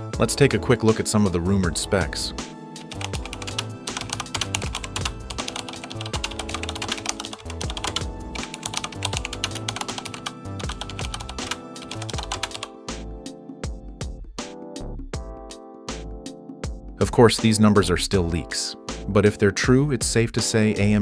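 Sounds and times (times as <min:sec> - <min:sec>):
background music: 0:00.0 - 0:21.0
computer keyboard typing: 0:02.8 - 0:12.7.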